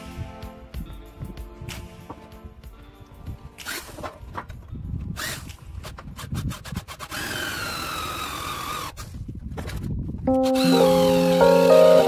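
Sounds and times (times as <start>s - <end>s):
cordless drill whining: 7.0s - 9.0s, 10.6s - 11.4s.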